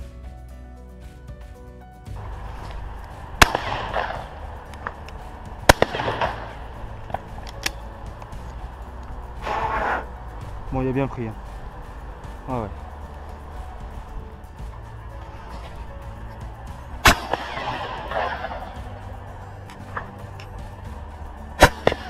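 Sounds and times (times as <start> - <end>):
shotgun shots with echo: 3.4 - 4.4, 5.6 - 6.7, 17.0 - 18.8, 21.6 - 22.0.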